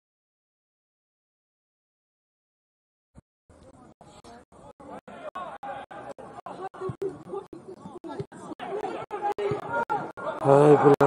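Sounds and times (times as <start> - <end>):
voices talking: 3.5 - 11.0.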